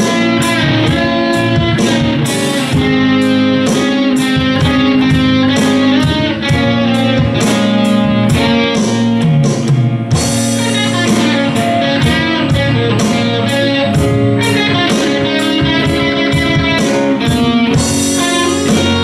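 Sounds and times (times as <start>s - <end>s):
live blues-rock band: 0.0s - 19.0s.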